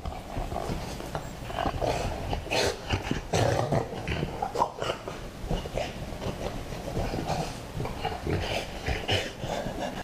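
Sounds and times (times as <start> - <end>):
dogs growling and grunting: 0.0 - 10.0.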